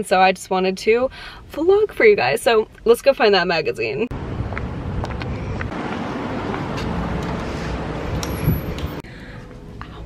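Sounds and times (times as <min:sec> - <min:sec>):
road traffic: 0:01.0 - 0:10.0
wind on microphone: 0:06.8 - 0:09.0.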